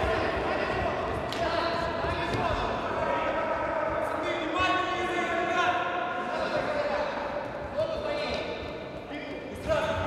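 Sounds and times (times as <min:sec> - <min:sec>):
players' footsteps: 0:00.0 - 0:04.6.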